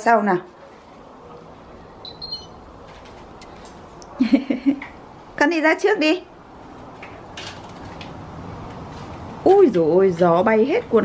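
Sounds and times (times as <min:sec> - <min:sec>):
short high electronic beeps: 0:02.0 - 0:02.6.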